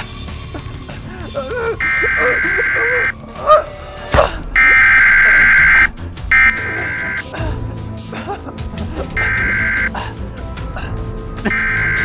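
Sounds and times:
harsh buzzing siren blasts: 0:01.8 - 0:03.1, 0:04.6 - 0:07.2, 0:09.2 - 0:09.9, 0:11.5 - 0:12.0.

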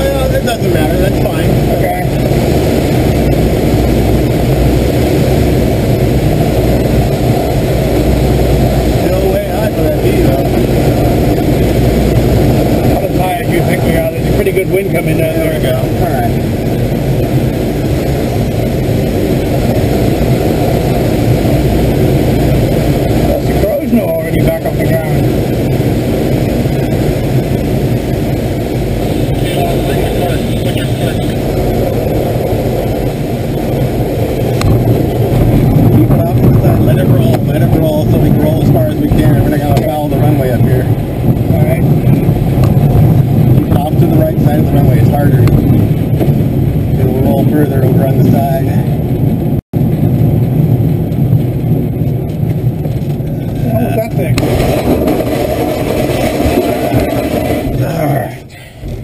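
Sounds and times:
airflow rushing over canopy: 0:00.0 - 0:59.0
wheel rolling over rough dirt: 0:50.2 - 0:58.2.

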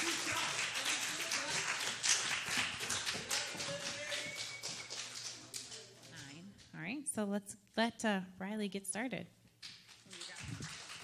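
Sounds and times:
audience applauding: 0:00.0 - 0:06.2, 0:10.0 - 0:11.0.

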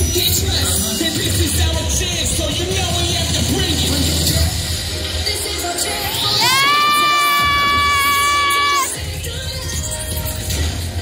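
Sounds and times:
cheer music with bass beat: 0:00.0 - 0:11.0
long high-pitched scream: 0:06.4 - 0:09.0.

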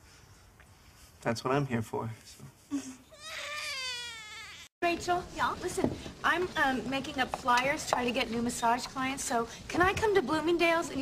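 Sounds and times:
baby crying: 0:03.1 - 0:04.7.

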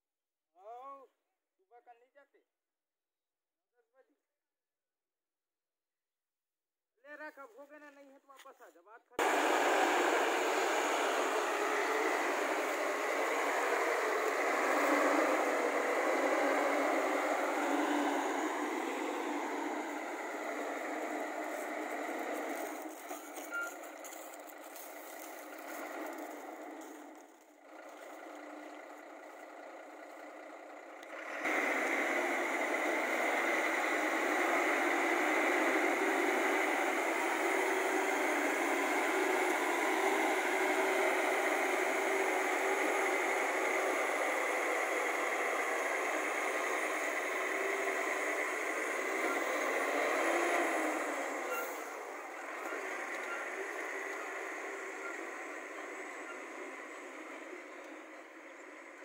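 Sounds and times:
diesel truck engine driving off: 0:09.2 - 0:59.0.

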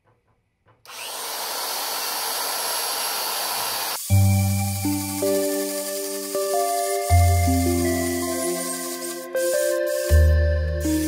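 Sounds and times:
band saw cutting metal: 0:00.9 - 0:11.0.

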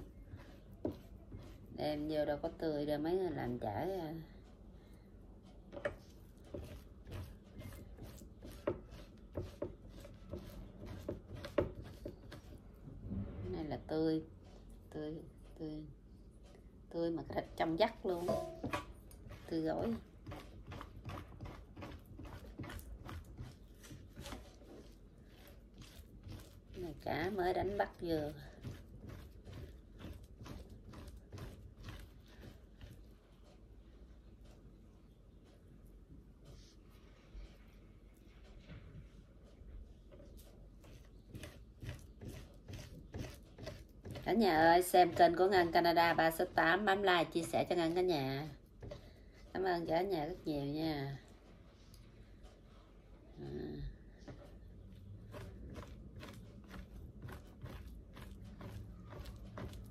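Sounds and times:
spoon scraping fish flesh: 0:05.8 - 0:12.6, 0:18.2 - 0:33.1, 0:40.3 - 0:45.6, 0:54.6 - 0:59.9
metal spoon scraping fish: 0:20.2 - 0:33.0, 0:41.0 - 0:44.2.

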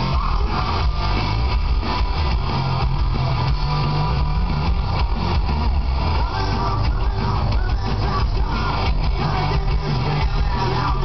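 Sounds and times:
bass: 0:00.0 - 0:11.0
distorted electric guitars: 0:00.0 - 0:11.0
drums: 0:00.0 - 0:11.0
live hard rock band: 0:00.0 - 0:11.0.

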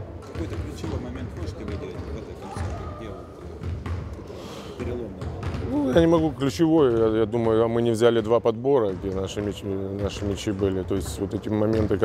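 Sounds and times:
basketballs bouncing: 0:00.0 - 0:12.0.

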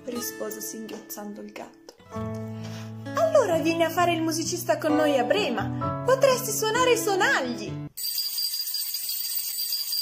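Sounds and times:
jingle stick shaken: 0:08.0 - 0:10.0.

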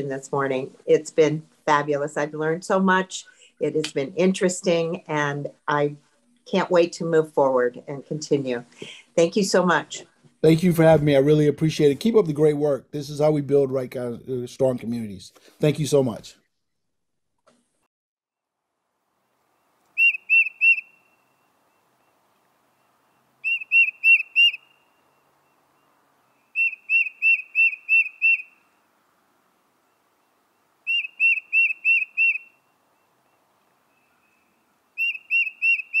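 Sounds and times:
songbird whistling: 0:19.9 - 0:22.2, 0:23.4 - 0:28.7, 0:30.8 - 0:36.0.

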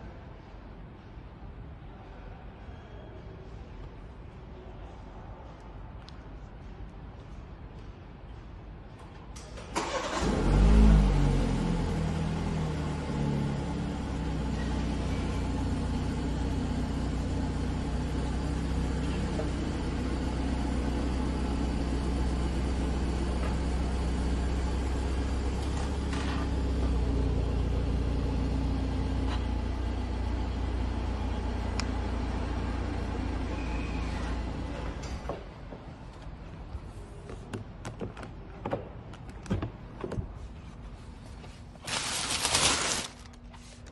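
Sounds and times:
car engine starting and idling: 0:09.4 - 0:35.2.

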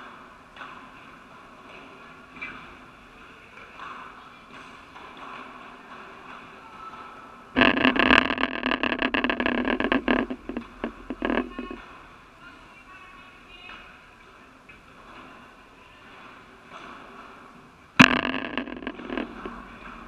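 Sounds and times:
scraping against microphone: 0:07.6 - 0:12.0, 0:18.0 - 0:20.0.

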